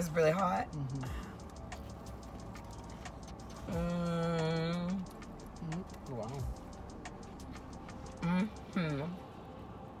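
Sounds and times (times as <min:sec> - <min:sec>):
person humming while eating: 0:03.6 - 0:06.0, 0:08.1 - 0:09.2.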